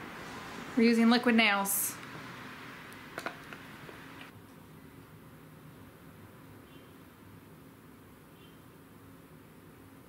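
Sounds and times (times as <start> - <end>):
room hiss: 0.0 - 4.3.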